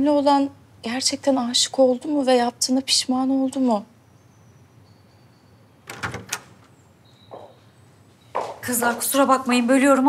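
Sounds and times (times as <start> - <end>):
door handle and latch clicking: 5.8 - 6.6.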